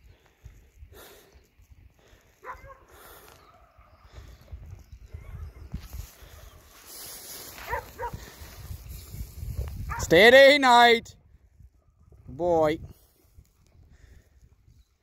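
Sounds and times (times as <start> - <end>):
dog barking: 2.4 - 2.9, 7.6 - 8.2, 9.9 - 10.1.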